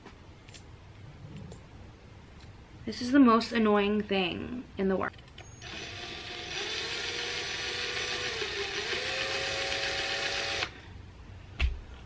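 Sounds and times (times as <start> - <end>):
cordless drill whining: 5.6 - 10.8.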